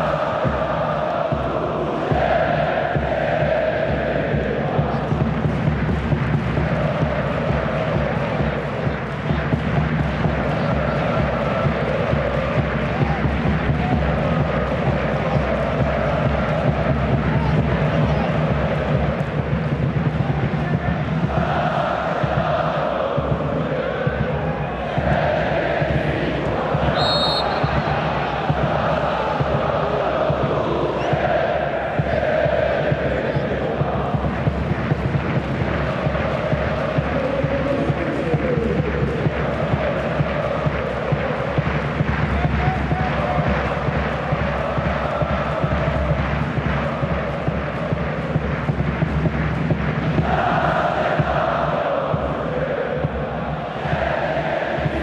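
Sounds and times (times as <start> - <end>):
stadium crowd chanting: 0.0 - 55.0
steady drum beat: 0.0 - 55.0
referee's whistle: 26.9 - 27.8.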